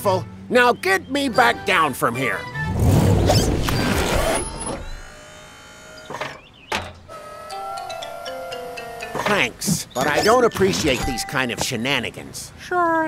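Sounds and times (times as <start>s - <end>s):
background music: 0.0s - 3.6s, 7.3s - 11.3s
steady electric whirr: 4.0s - 9.5s.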